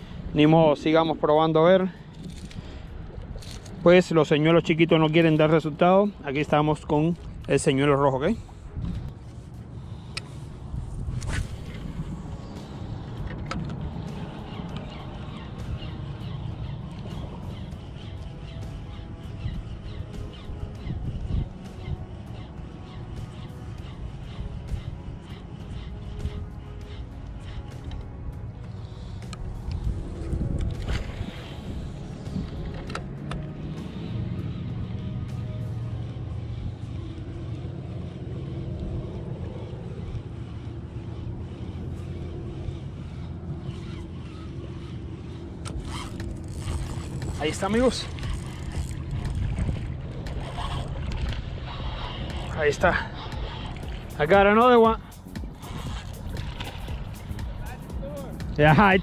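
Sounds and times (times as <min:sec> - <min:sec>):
water noise: 0:00.0 - 0:59.0
wind rumble on microphone: 0:00.0 - 0:59.0
fishing reel clicks: 0:03.2 - 0:03.9, 0:43.6 - 0:59.0.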